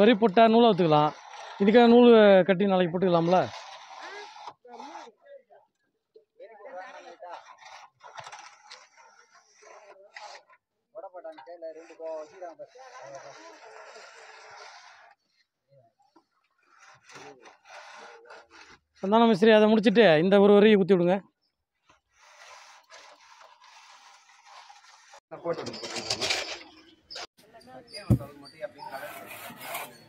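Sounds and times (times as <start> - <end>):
soft steady scraping: 0.0 - 20.2, 21.8 - 30.0.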